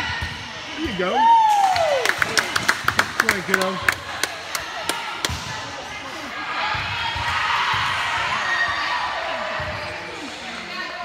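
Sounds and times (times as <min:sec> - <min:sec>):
ball bouncing on gym floor: 0:05.2 - 0:05.6.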